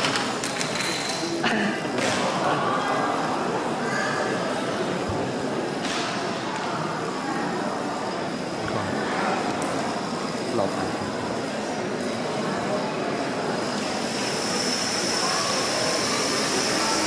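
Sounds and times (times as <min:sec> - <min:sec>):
voices echoing in a hall: 0:00.0 - 0:17.0.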